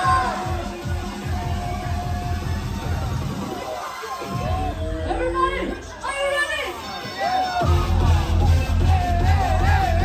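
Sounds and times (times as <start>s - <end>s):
dance music bass beat: 0.0s - 10.0s.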